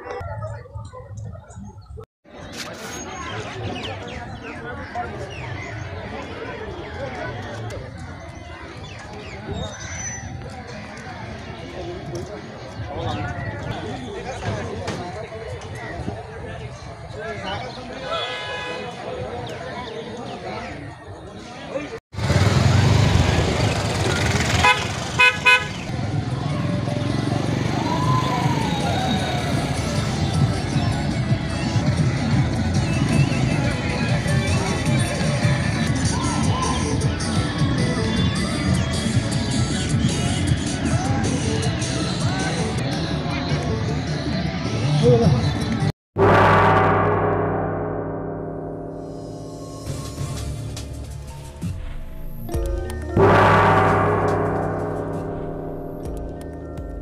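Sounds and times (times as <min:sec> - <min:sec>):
vehicle horn honking: 0:18.1 - 0:19.0, 0:24.6 - 0:25.9
gong-like struck note: 0:46.2 - 0:51.4, 0:53.2 - 0:57.0.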